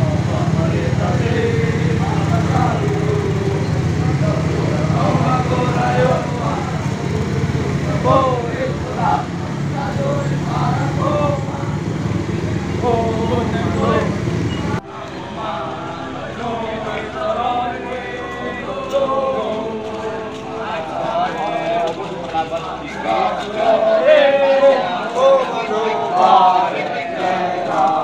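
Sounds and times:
indistinct voices and calls: 0.0s - 28.0s
motorcycle engines idling: 0.0s - 28.0s.

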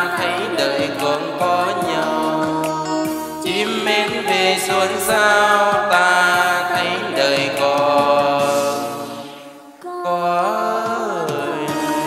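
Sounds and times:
karaoke backing music: 0.0s - 12.0s
person singing a long note: 9.8s - 12.0s.

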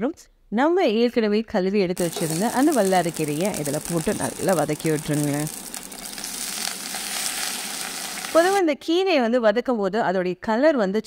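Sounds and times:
oil sizzling with leaves frying: 2.0s - 8.6s.

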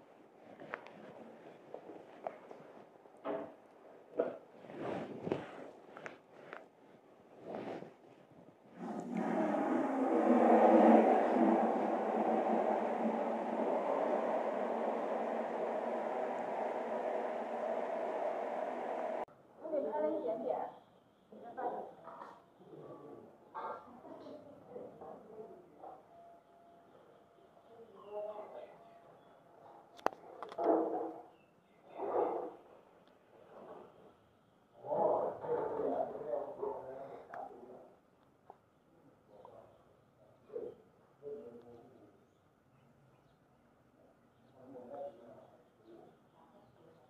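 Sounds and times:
quiet voices: 8.8s - 19.3s
soft murmurs: 34.8s - 38.0s.

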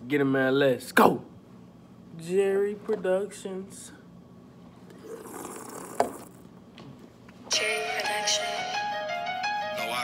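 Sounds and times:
person sipping and swallowing: 4.8s - 6.5s.

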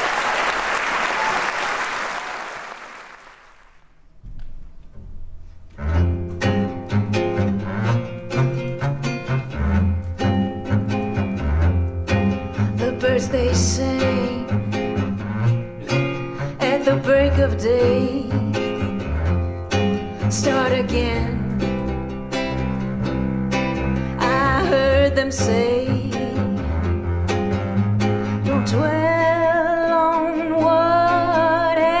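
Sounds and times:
strummed acoustic guitar: 5.8s - 32.0s
upright bass: 5.8s - 32.0s
violin melody: 5.8s - 32.0s.

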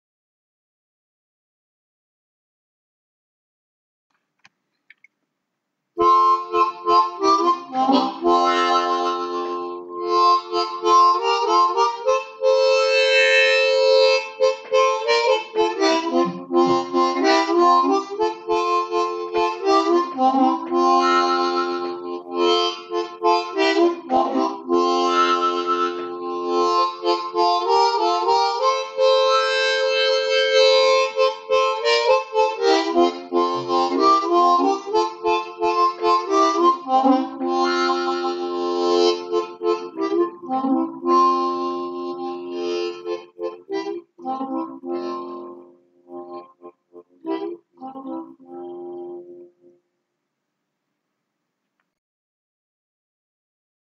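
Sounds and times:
blues harmonica melody: 6.0s - 49.6s.

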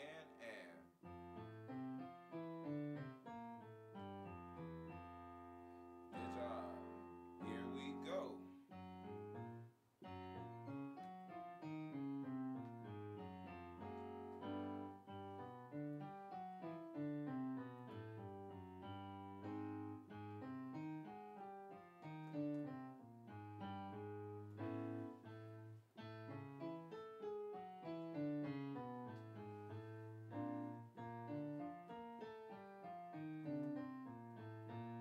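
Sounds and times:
piano chords and melody: 0.0s - 35.0s.

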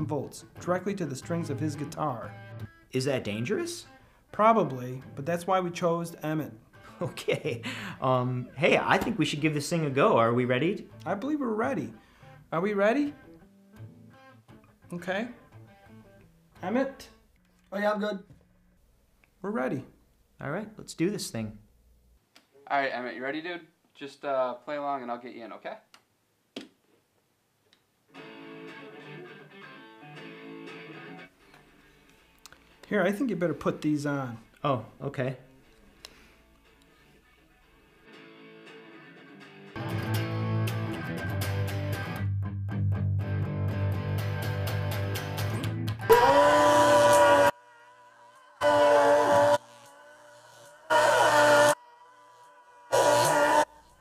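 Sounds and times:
guitar strumming: 0.0s - 12.4s, 13.0s - 16.8s, 28.1s - 32.9s, 36.1s - 46.1s
loud electric guitar: 38.0s - 47.5s.

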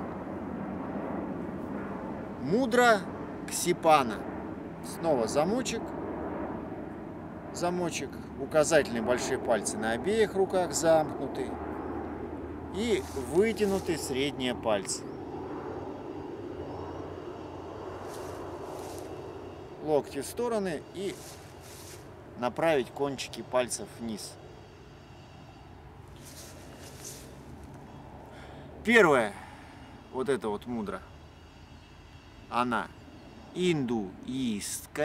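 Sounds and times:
low background rumble: 0.0s - 33.6s
distant engine drone: 0.0s - 35.0s.

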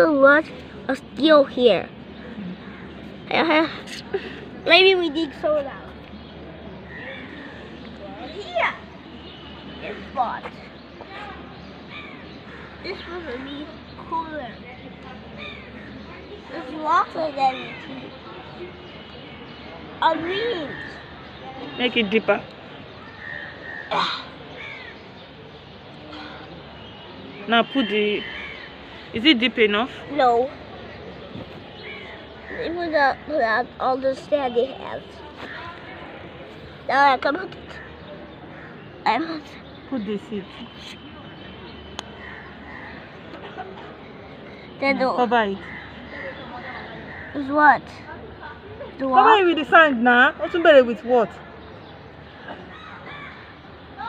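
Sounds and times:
outdoor background noise: 0.0s - 54.0s
crow cawing: 23.0s - 25.0s, 28.2s - 28.7s, 45.6s - 47.6s, 52.7s - 53.5s.

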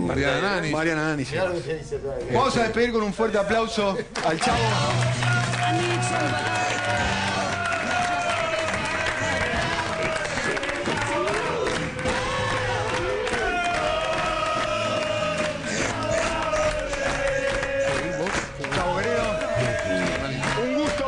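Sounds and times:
audience cheering and clapping: 4.2s - 21.0s.

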